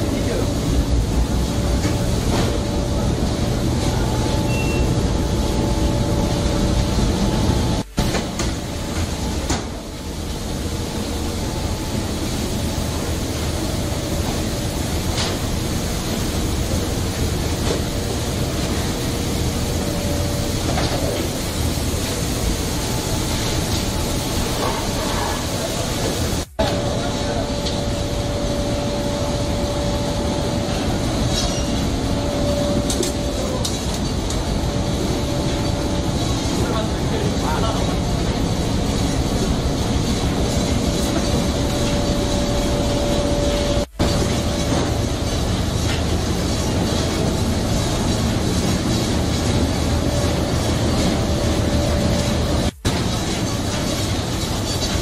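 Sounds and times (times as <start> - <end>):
factory machinery and conveyors running: 0.0 - 55.0.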